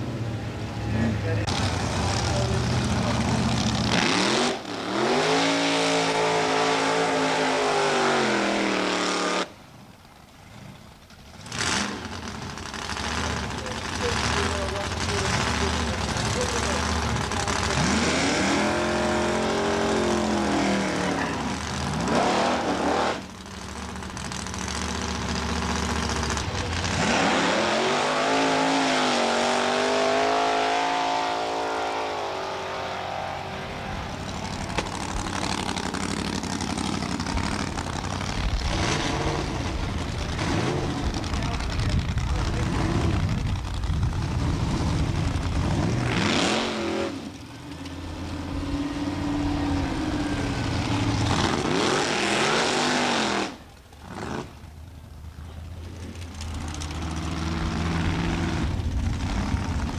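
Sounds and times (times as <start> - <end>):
drag racing engines revving: 0.0 - 59.9
sharp crack: 34.2 - 38.7.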